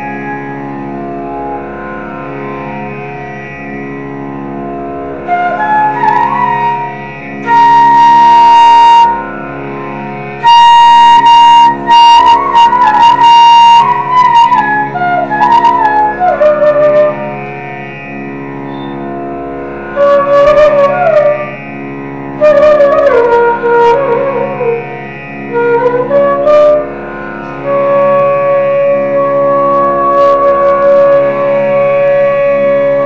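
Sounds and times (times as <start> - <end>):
flute playing ornamented phrases: 5.2 - 9.7, 10.3 - 17.6, 18.5 - 19.2, 19.8 - 21.8, 22.4 - 33.0.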